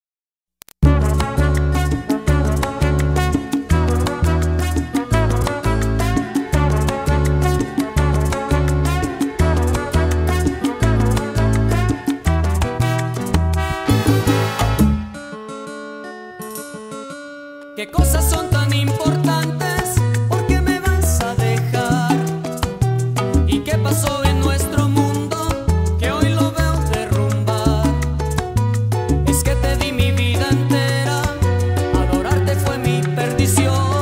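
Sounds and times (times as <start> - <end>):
salsa band with bass and percussion: 0.8 - 15.3, 17.9 - 34.0.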